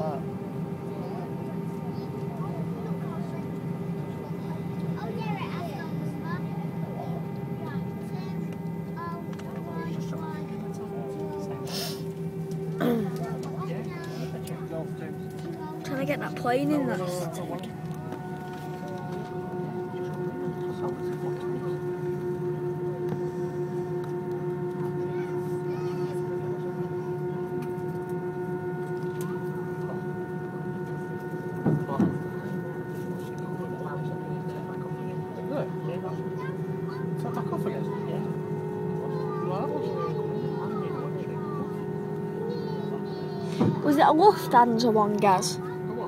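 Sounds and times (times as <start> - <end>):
jet engines heard in cabin: 0.0 - 46.0
passengers murmuring: 0.0 - 46.0.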